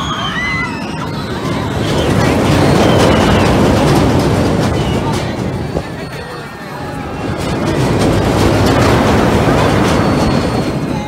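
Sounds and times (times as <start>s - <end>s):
ride train rumbling on steel track: 0.0s - 11.0s.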